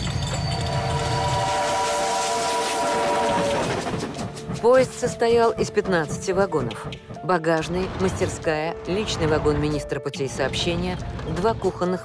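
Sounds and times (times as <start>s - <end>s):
train rumbling rhythmically: 0.0s - 8.6s
steam locomotive whistle: 0.6s - 4.1s.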